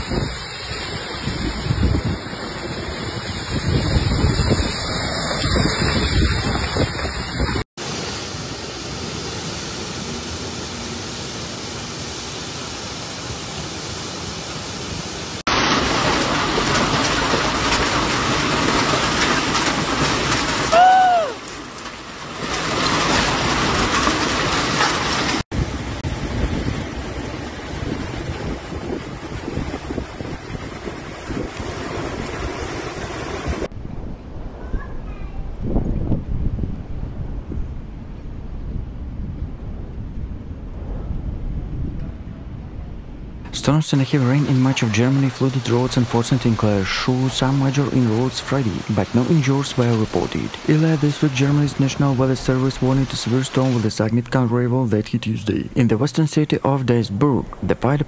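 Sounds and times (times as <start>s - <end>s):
wind gusting on microphone: 0.0s - 7.7s, 14.8s - 49.3s
heavy rain: 0.0s - 58.0s
voice-like cry: 20.7s - 21.4s.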